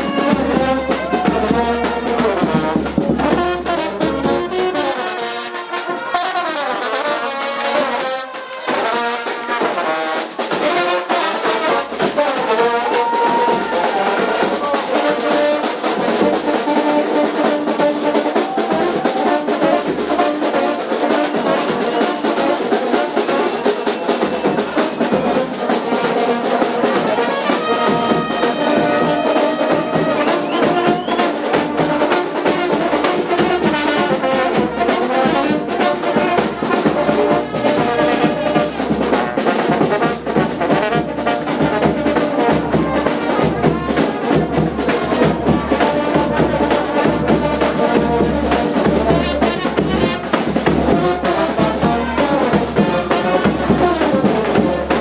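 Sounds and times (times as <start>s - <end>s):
steady drum beat: 0.0s - 4.8s, 8.9s - 55.0s
brass melody: 0.0s - 55.0s.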